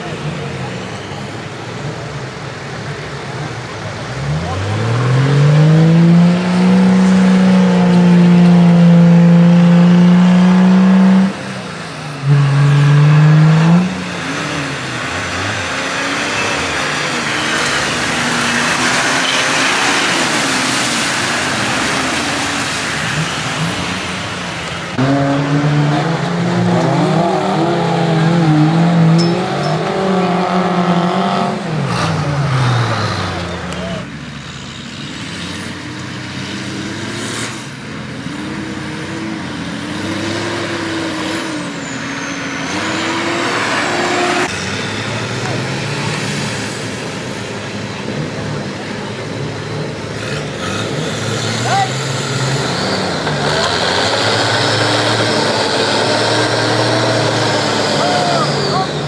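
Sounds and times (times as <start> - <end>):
diesel engine revving: 0.0 - 59.0
wheels churning mud: 10.6 - 34.3, 38.2 - 59.0.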